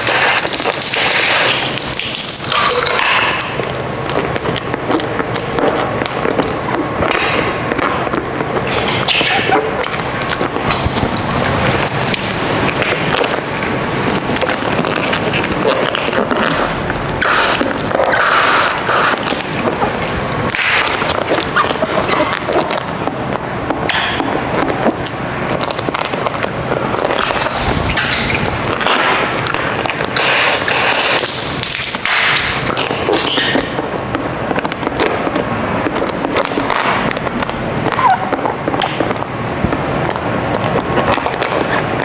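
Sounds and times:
squeegee scraping plastic film: 0.0s - 42.0s
squeegee squeaking on wet film: 8.6s - 12.2s.

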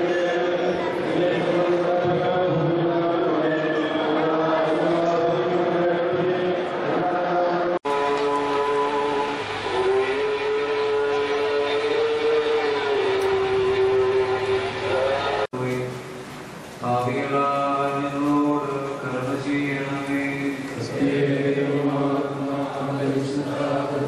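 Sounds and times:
voices chanting a hymn: 0.0s - 15.9s, 16.9s - 24.0s.

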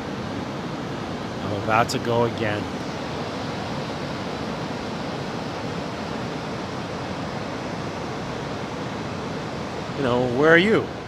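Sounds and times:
ocean surf breaking on beach: 0.0s - 11.0s.

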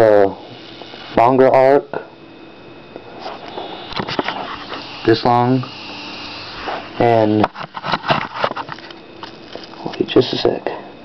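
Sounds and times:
electric arc snaps: 0.0s - 1.4s, 3.3s - 10.0s
high-voltage arc hissing and crackling: 0.0s - 2.1s, 3.0s - 10.5s.

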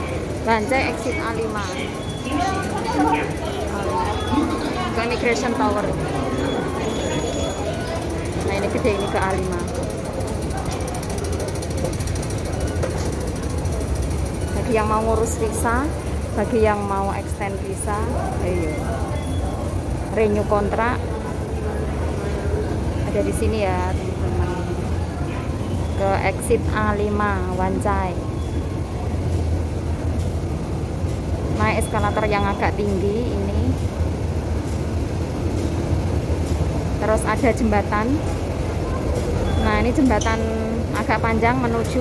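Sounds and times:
escalator machinery rumbling: 0.0s - 42.0s
station background noise: 0.0s - 42.0s.

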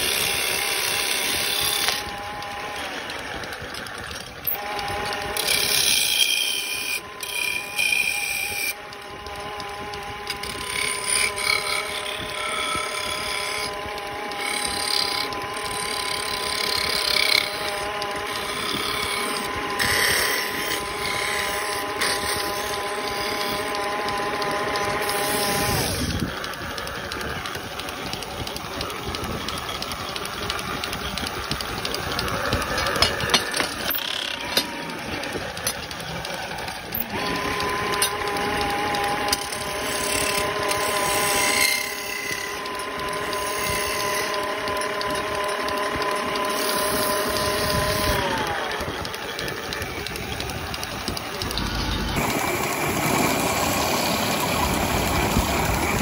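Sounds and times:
chisel scraping spinning wood: 0.0s - 56.0s
lathe motor whine: 0.0s - 56.0s.

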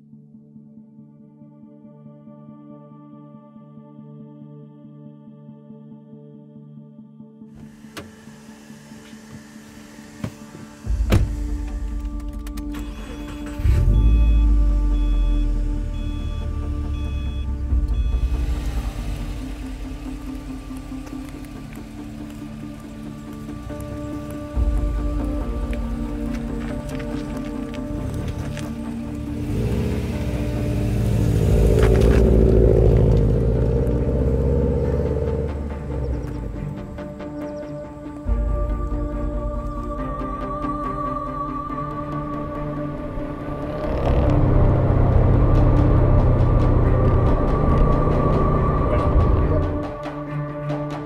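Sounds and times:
background music: 0.0s - 51.0s
car door shutting: 7.6s - 14.8s
car engine starting and idling: 7.6s - 40.5s, 42.0s - 50.2s.

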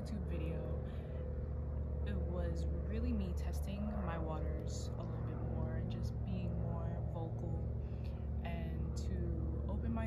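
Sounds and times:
woman speaking softly: 0.0s - 0.9s, 2.0s - 7.8s, 8.4s - 10.0s
low background hum: 0.0s - 10.0s.

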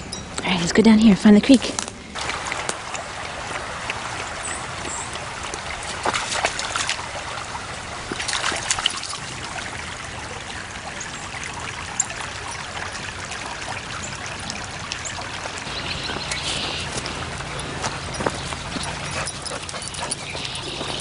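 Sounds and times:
creek trickling over stones: 0.1s - 21.0s
water splashing: 1.5s - 21.0s.

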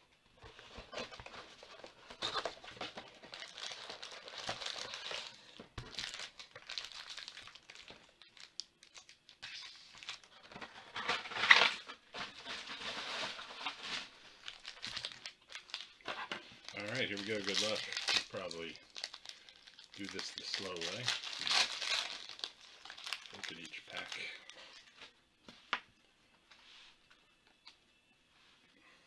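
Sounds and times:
packaging crinkling and rustling: 0.4s - 24.9s.

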